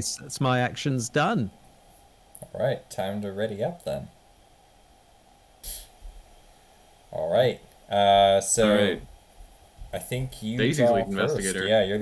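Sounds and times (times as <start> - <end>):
breath puff on microphone: 5.6 - 5.9.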